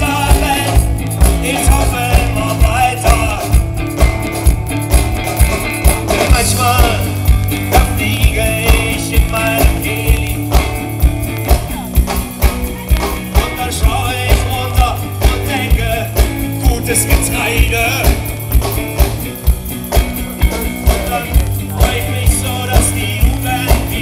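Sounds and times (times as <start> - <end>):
drum kit beat: 0.0 - 24.0
electric guitars: 0.0 - 24.0.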